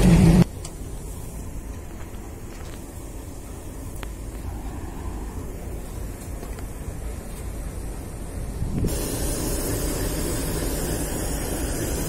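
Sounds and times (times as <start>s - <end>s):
train rumbling past: 0.0s - 2.4s, 3.0s - 12.0s
faint low rumble: 0.0s - 8.9s.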